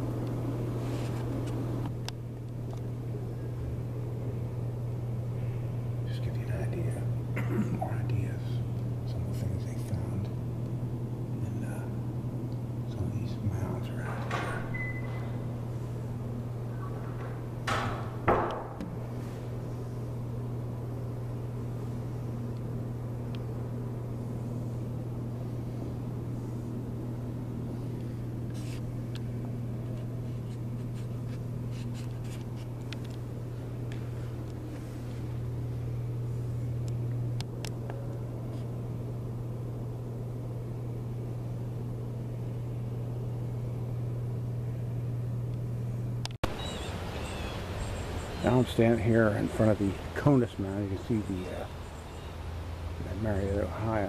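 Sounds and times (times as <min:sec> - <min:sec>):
faint outdoor ambience: 0:00.0 - 0:54.0
low-pitched room hum: 0:00.0 - 0:54.0.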